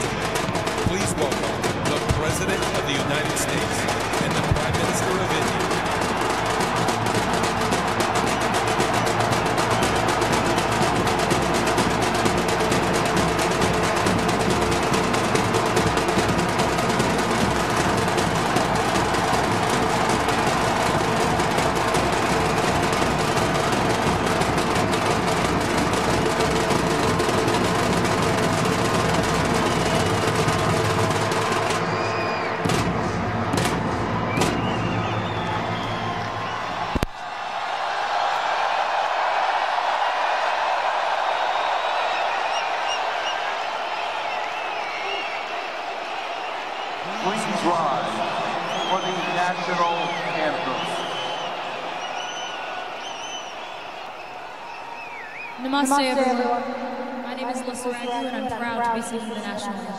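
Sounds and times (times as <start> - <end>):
crowd cheering and clapping: 0.0 - 59.9
high calls from crowd: 0.0 - 59.9.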